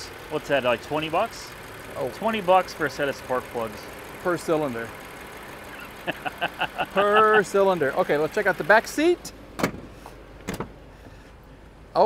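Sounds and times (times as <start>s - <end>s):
car door latch click: 9.6s - 10.8s.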